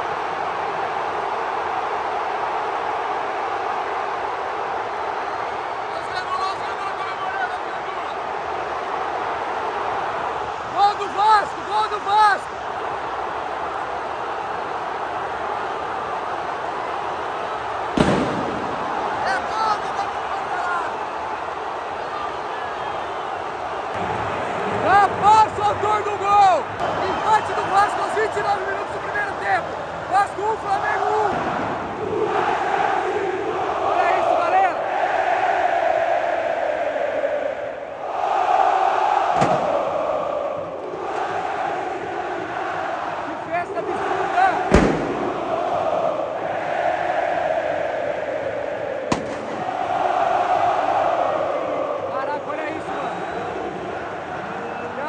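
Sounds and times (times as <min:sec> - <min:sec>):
crowd chanting: 0:00.0 - 0:55.0
stadium crowd roar: 0:00.0 - 0:55.0.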